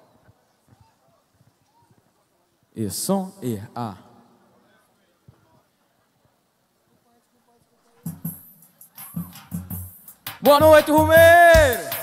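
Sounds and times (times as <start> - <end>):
band playing punchy low notes: 9.2 - 12.0.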